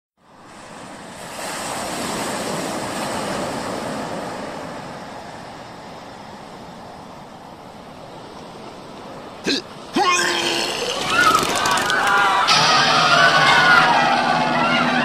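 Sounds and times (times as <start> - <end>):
ocean wave rushing in: 0.3 - 6.3.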